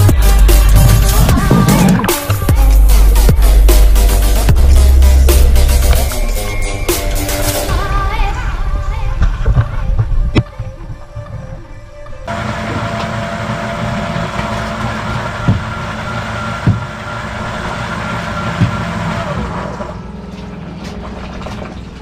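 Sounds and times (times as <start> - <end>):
background music: 0.0 - 13.0
boat engine running: 0.0 - 22.0.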